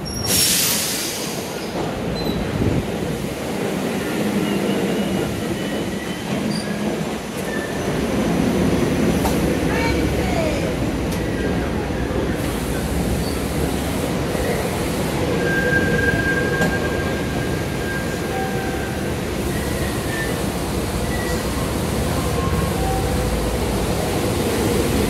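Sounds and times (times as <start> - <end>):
train wheel squeals: 0.0 - 2.5, 4.2 - 8.0, 13.2 - 13.6, 14.3 - 23.2
train rumble: 0.0 - 25.0.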